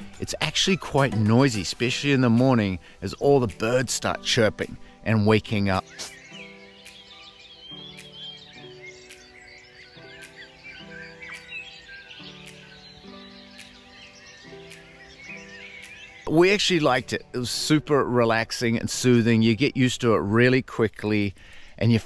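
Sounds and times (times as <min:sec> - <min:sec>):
birds chirping: 0:00.0 - 0:22.0
quiet background music: 0:00.0 - 0:22.0.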